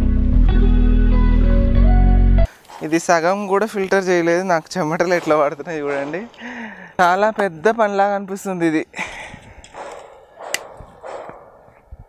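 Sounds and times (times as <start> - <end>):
man's voice: 2.8 - 9.1
sharp click: 9.6 - 11.4.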